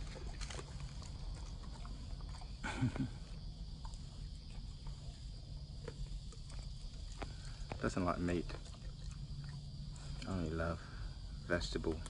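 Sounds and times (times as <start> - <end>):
dog chewing wet crunches: 0.0 - 2.6, 3.4 - 10.4.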